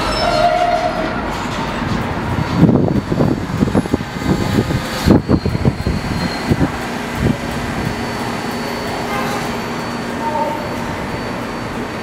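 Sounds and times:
train wheels clacking over rail joints: 0:00.0 - 0:09.6
train running with low hum: 0:00.0 - 0:12.0.

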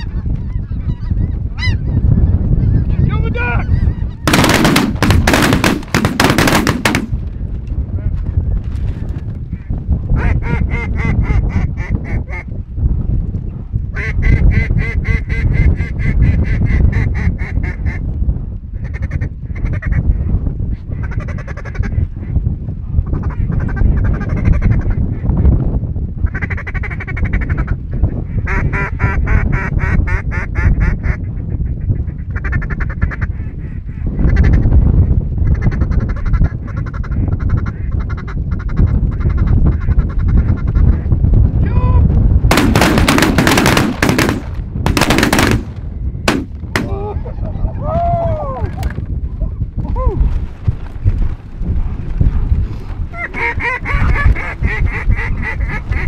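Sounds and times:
steady low rumble: 0:04.1 - 0:11.9, 0:39.7 - 0:47.8.

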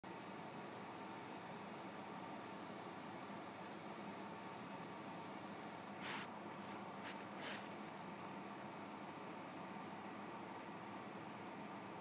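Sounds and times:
faint steady hiss: 0:00.1 - 0:12.0.

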